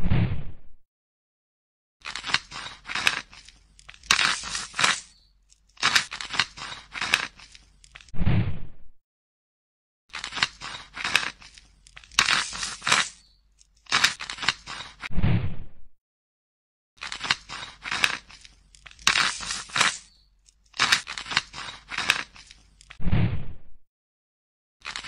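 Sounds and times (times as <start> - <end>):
knife scraping crusty surface: 2.0 - 8.1, 10.1 - 15.1, 17.0 - 23.0.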